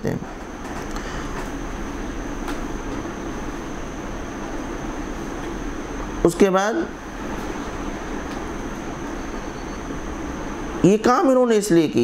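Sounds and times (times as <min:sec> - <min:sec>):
mechanical hum and hiss: 0:00.0 - 0:12.0
thin high whine: 0:00.0 - 0:12.0.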